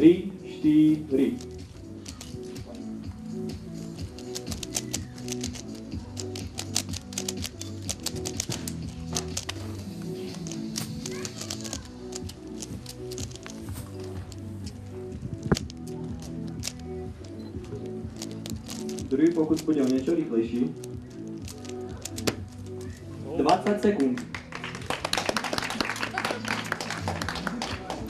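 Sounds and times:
background music: 0:00.0 - 0:28.0
puzzle cube clicking: 0:01.2 - 0:02.7, 0:03.5 - 0:23.1.

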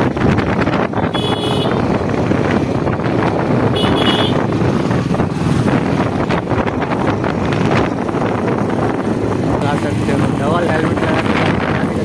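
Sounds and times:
motorcycle engine: 0:00.0 - 0:12.0
wind rushing past microphone: 0:00.0 - 0:12.0
vehicle horn: 0:01.0 - 0:01.8, 0:03.7 - 0:04.5.

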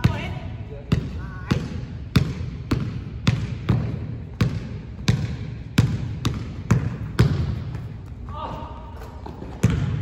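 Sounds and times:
basketball bouncing on hardwood floor: 0:00.9 - 0:07.9, 0:09.2 - 0:10.0.

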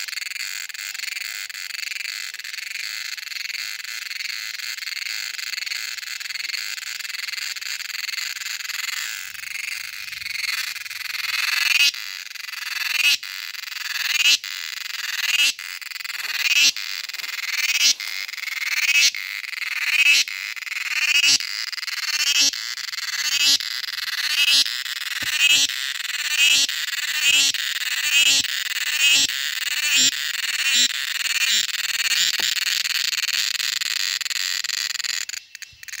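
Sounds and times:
cicada buzzing: 0:00.0 - 0:36.0.

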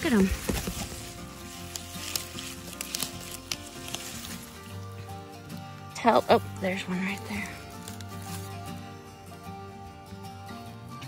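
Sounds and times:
rustling of grass and leaves: 0:00.0 - 0:10.2
quiet background music: 0:00.0 - 0:11.0.

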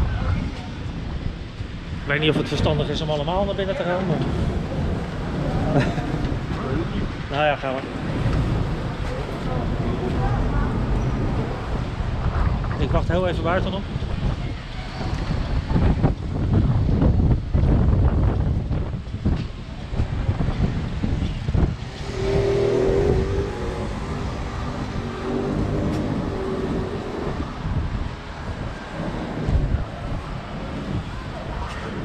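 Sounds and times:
city street traffic: 0:00.0 - 0:32.0
wind rumbling on microphone: 0:00.0 - 0:32.0.

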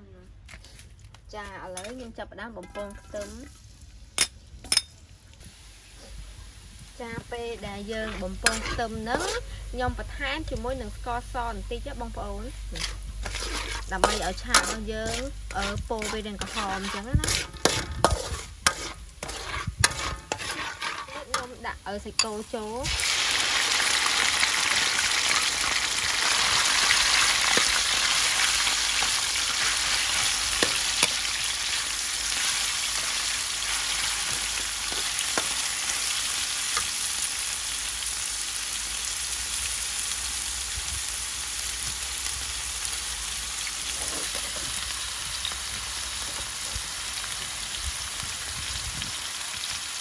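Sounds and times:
meat sizzling in hot oil: 0:05.4 - 0:50.0.

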